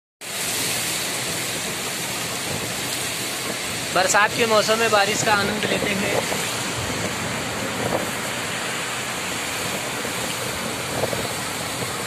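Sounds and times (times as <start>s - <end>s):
heavy rain on a flat roof: 0.2s - 12.0s.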